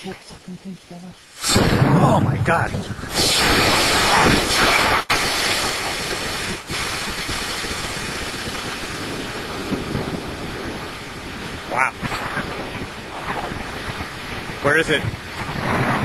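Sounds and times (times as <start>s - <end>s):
rocket motor rushing hiss: 1.3s - 11.5s.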